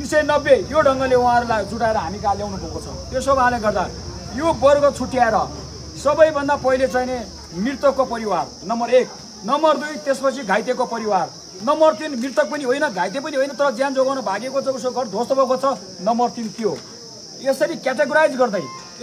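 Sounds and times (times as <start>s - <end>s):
man speaking to crowd: 0.0s - 19.0s
steady high-pitched hiss: 0.0s - 19.0s.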